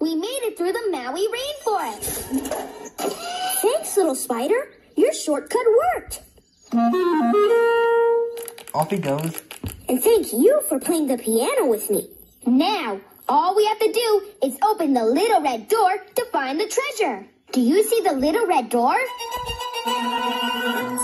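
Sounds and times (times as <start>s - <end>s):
orchestral music with woodwinds: 6.7s - 8.3s, 19.2s - 21.0s.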